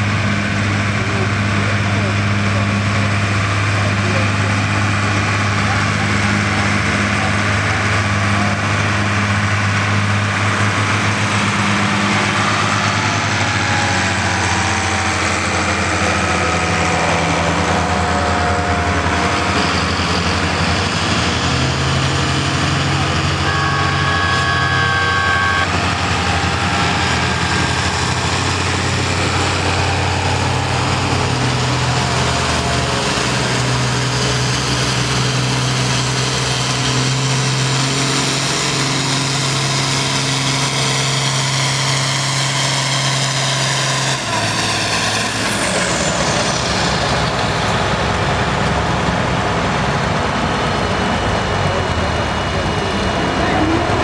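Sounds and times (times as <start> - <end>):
tractor engine under full load: 0.0 - 54.0
short two-tone beep: 23.4 - 25.8.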